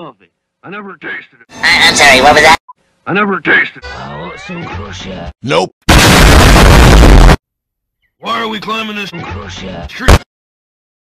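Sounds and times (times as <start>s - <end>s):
distorted cannon shot: 5.9s - 7.4s.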